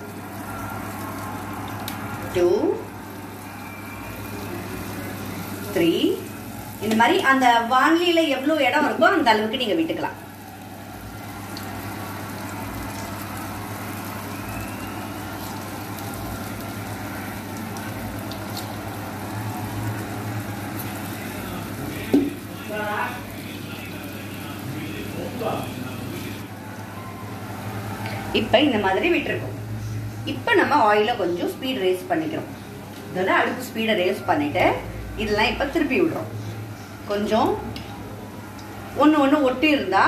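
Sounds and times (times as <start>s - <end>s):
dumplings deep-frying in oil: 0.0s - 40.0s.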